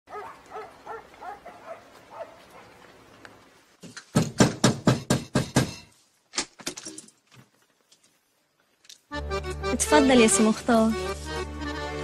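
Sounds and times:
dog barking: 0.1 - 2.8.

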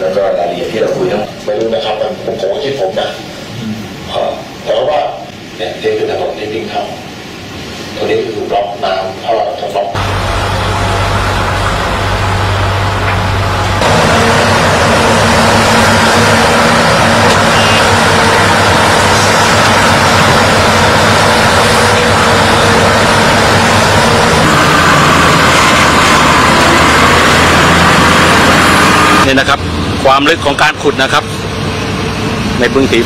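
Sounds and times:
heavy diesel engines: 0.0 - 33.0.

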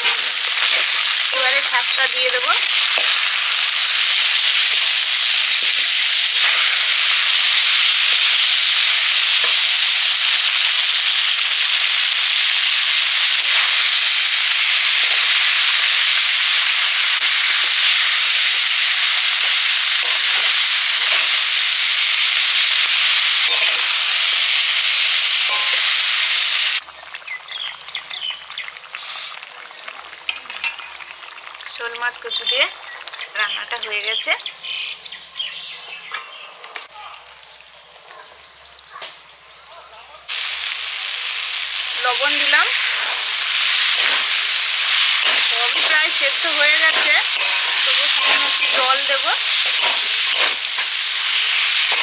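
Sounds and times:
food sizzling in hot oil: 0.0 - 34.9, 40.3 - 52.0
spatula stirring: 23.4 - 23.9, 42.8 - 50.6.

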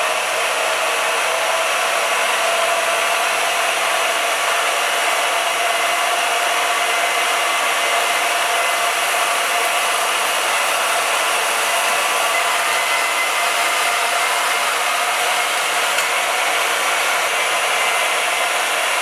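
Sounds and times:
band saw cutting steel: 0.0 - 19.0.

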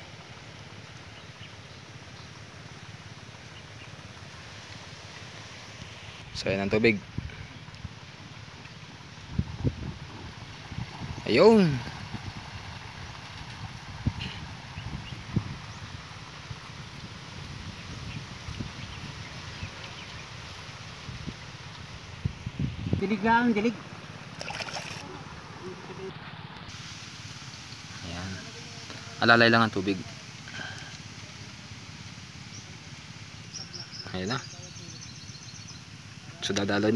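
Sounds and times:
water pouring from hose: 0.0 - 6.4, 7.1 - 22.9, 23.8 - 25.6, 26.6 - 35.0.

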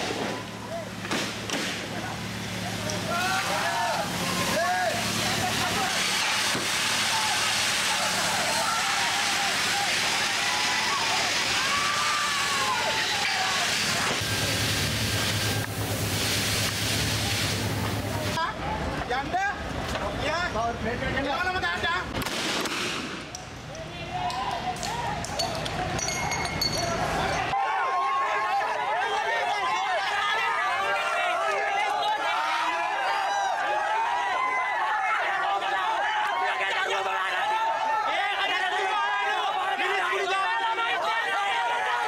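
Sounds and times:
water cannon jet hissing: 0.0 - 18.4
people shouting: 1.9 - 14.2, 27.0 - 42.0.

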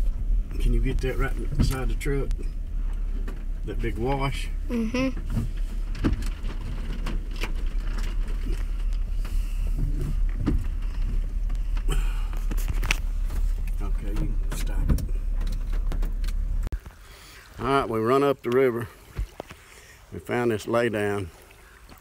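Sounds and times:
truck rumbling on a dirt track: 0.0 - 16.8
knocks and rattles: 5.2 - 16.7.

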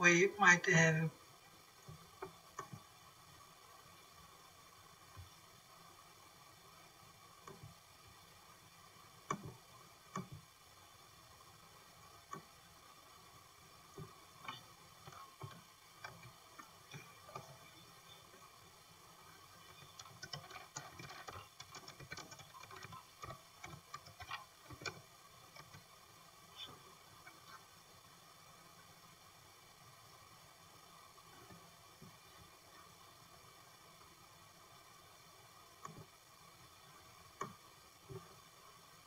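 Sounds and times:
faint steady hum: 0.0 - 39.0
keyboard typing: 19.6 - 25.8.

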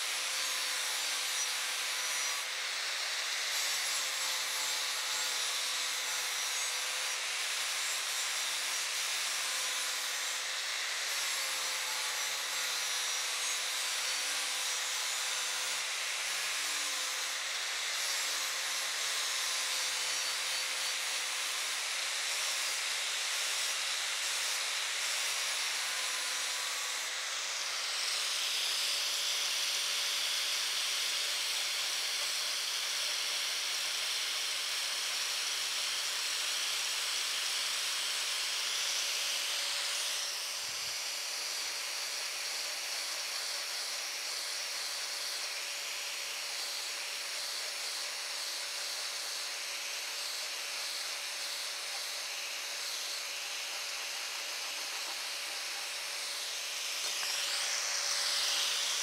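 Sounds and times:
angle grinder whining: 0.0 - 59.0.

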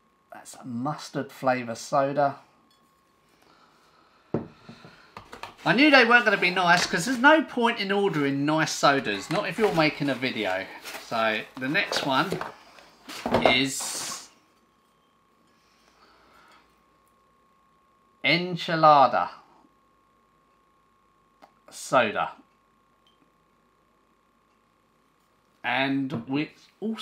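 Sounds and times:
faint high hum: 0.0 - 27.0
handling rustle: 8.8 - 14.2.

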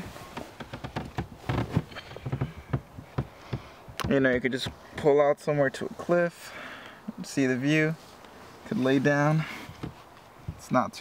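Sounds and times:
bedding rustling: 0.0 - 3.7.

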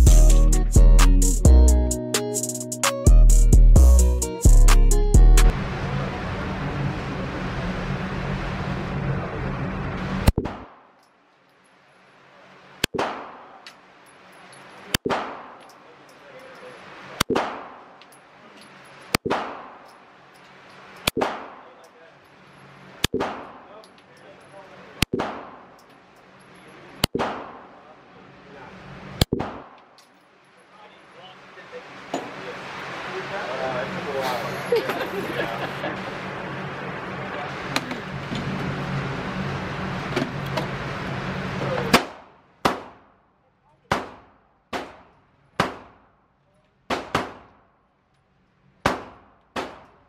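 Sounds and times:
background music: 0.0 - 5.5
sharp gunshots indoors: 10.2 - 11.0, 12.8 - 13.7, 15.0 - 15.7, 17.2 - 18.0, 19.2 - 19.9, 21.1 - 21.8, 23.0 - 23.7, 25.0 - 25.8, 27.0 - 27.9, 29.1 - 30.0, 41.9 - 43.1, 43.9 - 46.2, 46.9 - 47.7, 48.8 - 50.0.

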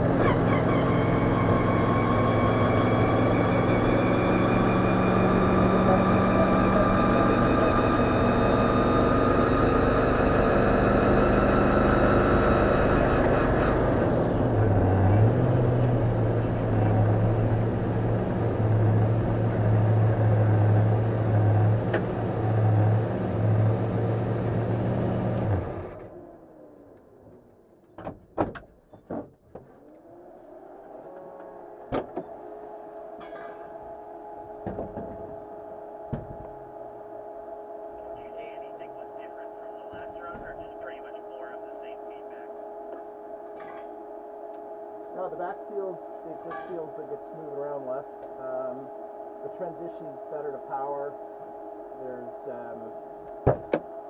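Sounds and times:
race car engine: 0.0 - 54.0
sharp knocks: 53.4 - 53.9.

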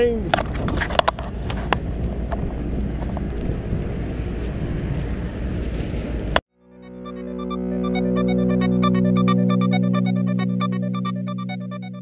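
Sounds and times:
wind rumbling on microphone: 0.0 - 6.4
music: 6.6 - 12.0.

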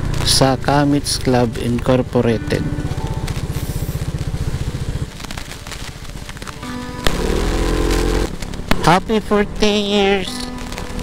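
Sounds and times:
motorcycle engine idling: 0.1 - 11.0
music with deep bass note: 2.2 - 11.0.

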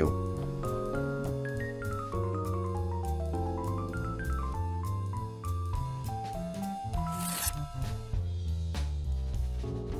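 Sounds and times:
paper tearing: 7.0 - 7.6
background music with drums: 7.6 - 9.9.

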